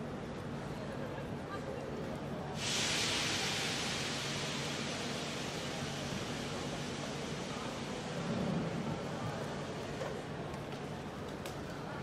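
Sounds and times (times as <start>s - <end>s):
busy station hall background: 0.0s - 12.0s
compressed air hissing from train: 2.6s - 10.0s.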